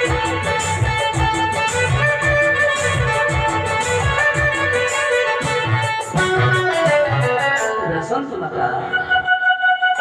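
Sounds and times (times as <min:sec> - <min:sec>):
melody instrument: 0:00.0 - 0:10.0.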